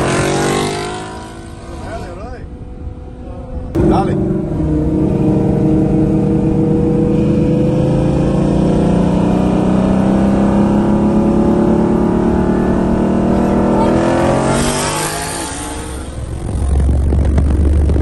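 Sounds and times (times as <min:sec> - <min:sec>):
car engine at full throttle: 0:00.0 - 0:18.0.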